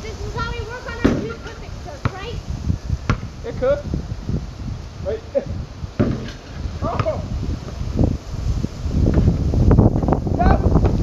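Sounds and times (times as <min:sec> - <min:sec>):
wind buffeting microphone: 0:00.0 - 0:11.0
short knocks: 0:06.0 - 0:07.2.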